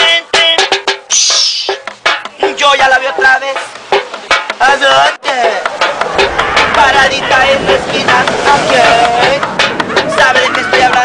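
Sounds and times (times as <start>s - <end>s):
person singing: 4.6s - 11.0s.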